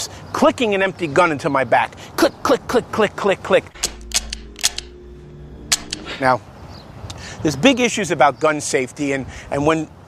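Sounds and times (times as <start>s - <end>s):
low hum: 3.7s - 7.2s.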